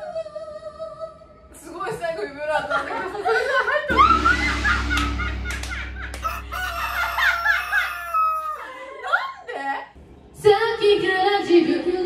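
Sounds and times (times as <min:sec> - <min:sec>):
women laughing in squealing bursts: 0:06.3 - 0:09.3.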